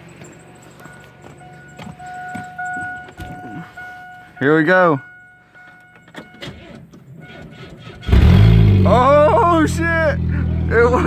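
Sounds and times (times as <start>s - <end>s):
electronic warning chime: 0.1s - 6.6s.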